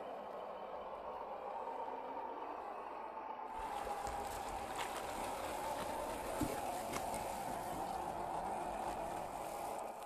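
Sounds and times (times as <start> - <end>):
water splashing: 3.6 - 9.9
electric motor and gearbox whining: 3.6 - 10.0.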